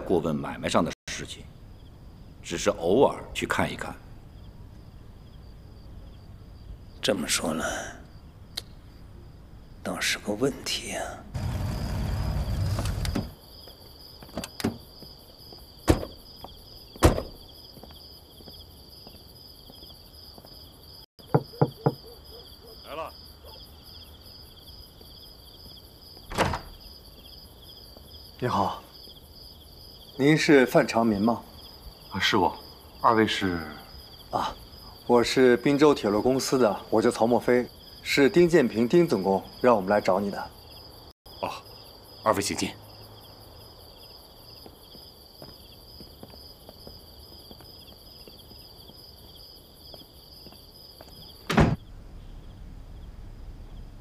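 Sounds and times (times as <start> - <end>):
crickets chirping: 0.0 - 54.0
knocks on a wooden door: 15.9 - 16.2, 17.0 - 17.4, 21.2 - 22.1
car door slamming: 17.0 - 17.4, 51.5 - 51.8
soft footsteps: 44.6 - 51.3.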